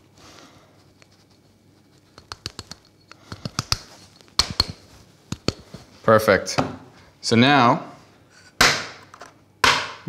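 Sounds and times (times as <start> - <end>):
sharp knocks on metal: 9.6 - 10.0.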